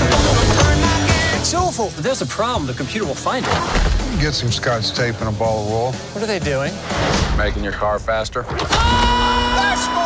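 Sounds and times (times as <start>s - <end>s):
trailer music: 0.0s - 10.0s.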